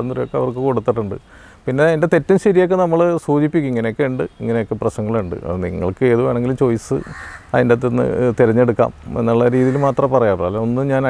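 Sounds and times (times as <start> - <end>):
bird calling: 0.0 - 1.8, 3.6 - 11.0
man talking: 0.0 - 11.0.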